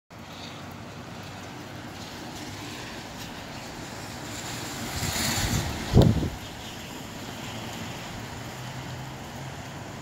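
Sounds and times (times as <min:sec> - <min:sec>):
rain: 0:00.1 - 0:10.0
gusty wind: 0:00.7 - 0:10.0.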